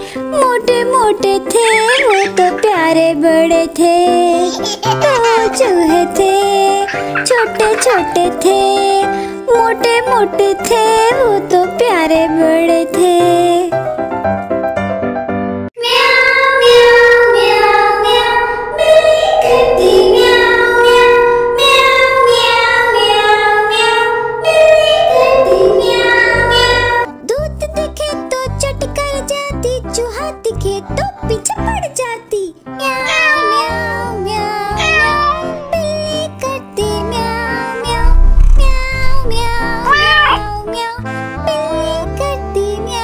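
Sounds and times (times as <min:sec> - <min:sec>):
person singing a children's rhyme: 0:00.0 - 0:13.8, 0:25.0 - 0:38.1, 0:39.0 - 0:43.0
backing music: 0:24.2 - 0:27.4, 0:37.8 - 0:41.3
cat meows: 0:32.8 - 0:34.1, 0:34.7 - 0:35.9, 0:39.5 - 0:40.6.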